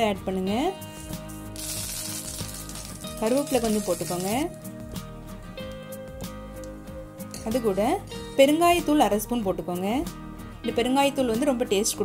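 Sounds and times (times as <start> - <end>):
leaves sizzling in hot oil: 0.9 - 4.8.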